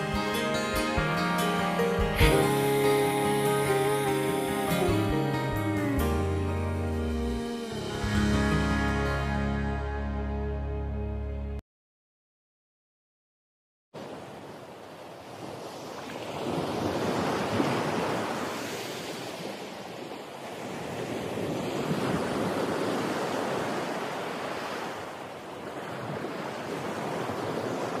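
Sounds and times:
ocean waves washing: 0.0s - 10.2s, 14.0s - 28.0s.

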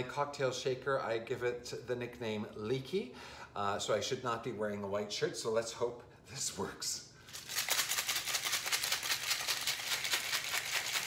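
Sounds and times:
ice rattling in cocktail shaker: 7.3s - 11.0s.

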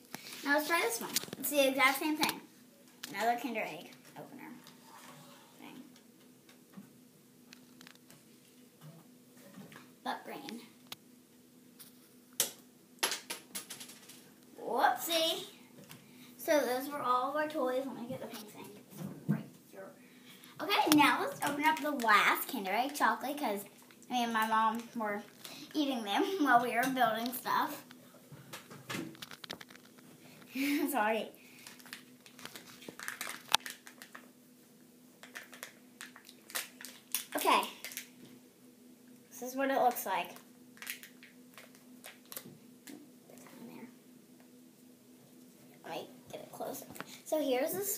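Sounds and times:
wrapper crinkling: 29.1s - 30.0s, 31.5s - 34.3s, 35.2s - 38.2s, 40.7s - 42.5s.

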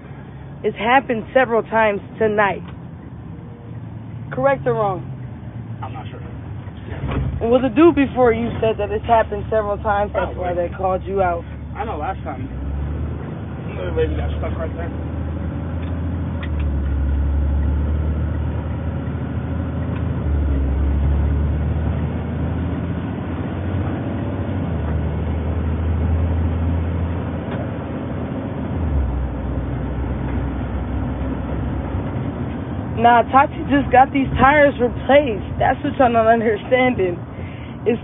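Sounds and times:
truck engine and road drone: 0.0s - 38.0s.

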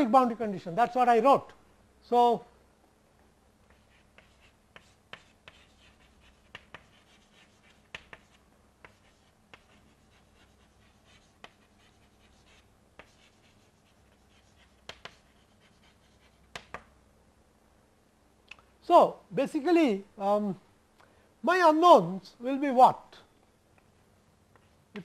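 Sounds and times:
chalk scratching: 3.7s - 16.7s
chalk tapping on chalkboard: 3.7s - 16.9s.

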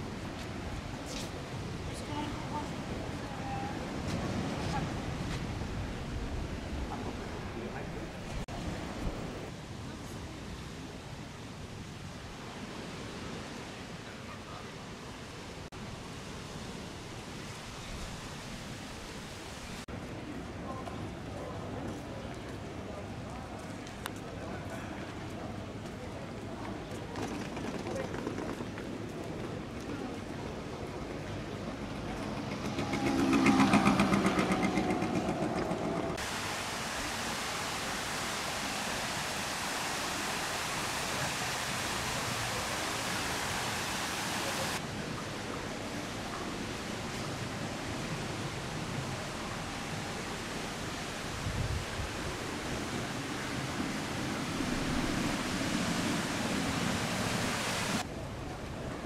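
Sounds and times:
vehicle passing by: 32.0s - 36.2s
fountain water splashing: 36.2s - 59.0s.

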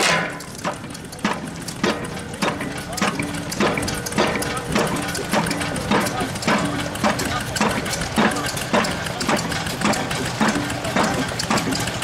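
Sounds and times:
steam engine driving rock crusher: 0.0s - 12.0s.

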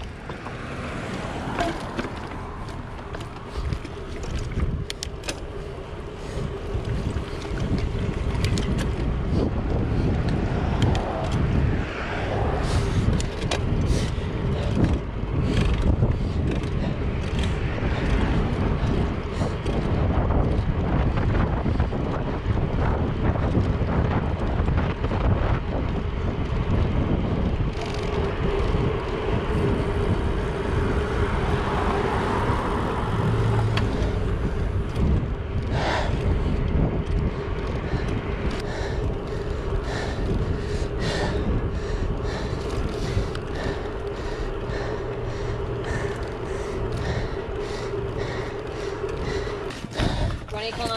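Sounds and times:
tyres rolling on asphalt: 0.0s - 50.9s
wind buffeting microphone: 0.0s - 50.9s.

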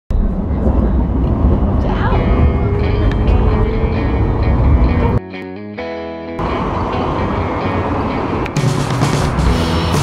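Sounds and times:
vehicle rumble from inside: 0.1s - 5.2s, 6.4s - 10.0s
faint passenger voices: 0.2s - 3.8s.

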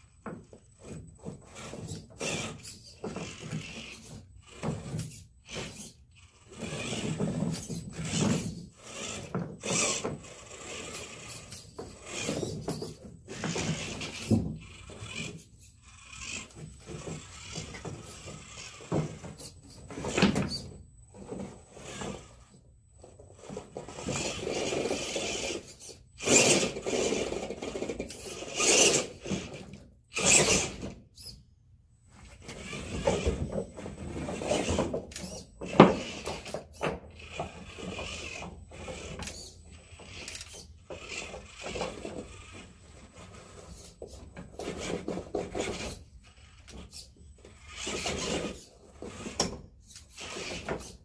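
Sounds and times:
electric motor bursts: 23.9s - 31.3s.

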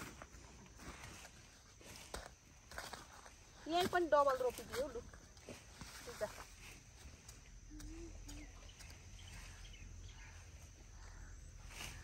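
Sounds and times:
low steady outdoor rumble: 0.0s - 12.0s
rustling of leafy plants: 0.0s - 12.0s.

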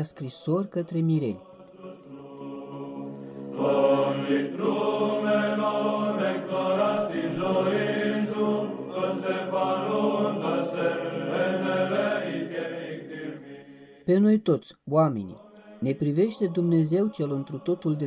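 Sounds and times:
choir chanting sustained notes: 0.0s - 14.1s, 15.3s - 18.0s.

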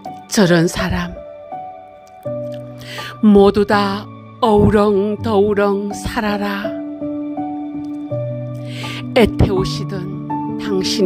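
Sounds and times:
soft instrumental music: 0.0s - 11.0s.

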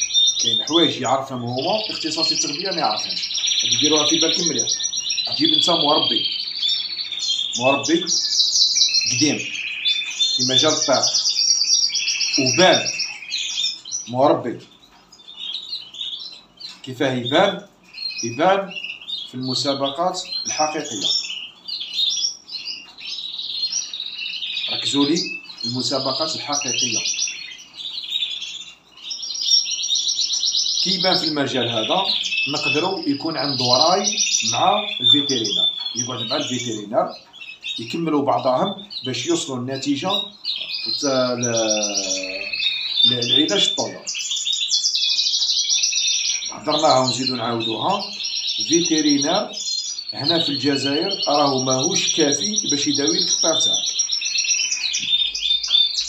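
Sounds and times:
canaries singing trills: 0.0s - 56.0s.

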